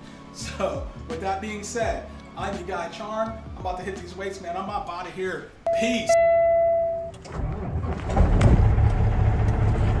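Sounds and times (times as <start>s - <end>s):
bright chime tone: 5.7s - 7.1s.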